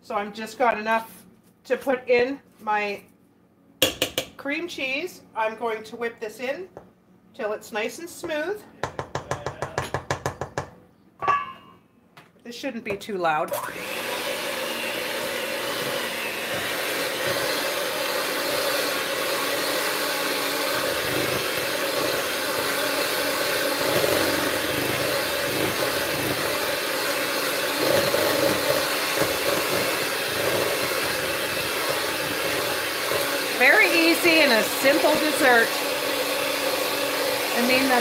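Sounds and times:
electric hand mixer whipping: 13.5 - 38.0.

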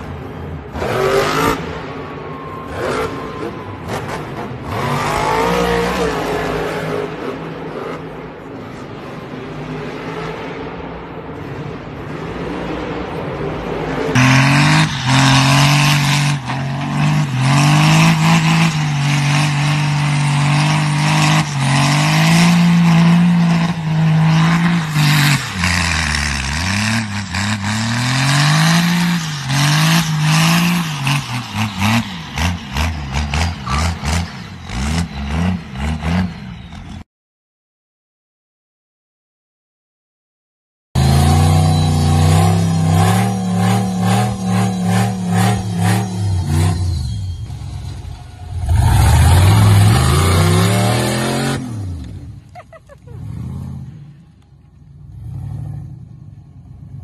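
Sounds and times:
monster truck engine: 0.0 - 37.0, 41.0 - 57.0.

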